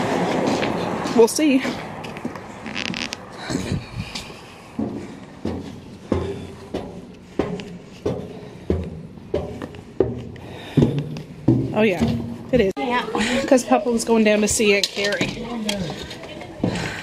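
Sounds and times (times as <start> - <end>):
footsteps on metal stairs: 0.0 - 17.0.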